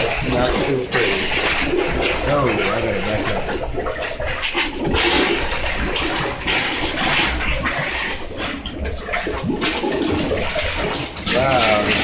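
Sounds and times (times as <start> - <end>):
water gushing and gurgling: 0.0 - 12.0.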